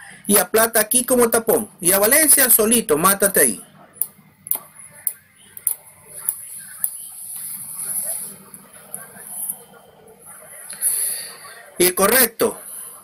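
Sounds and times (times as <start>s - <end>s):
faint indistinct voices: 3.4s - 13.0s.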